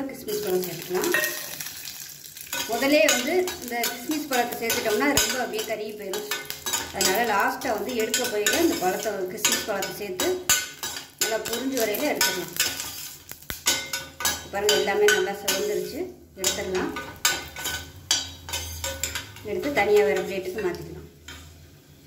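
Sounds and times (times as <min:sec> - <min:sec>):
light sizzle: 0:00.0 - 0:22.0
metal ladle scraping pot: 0:02.5 - 0:20.4.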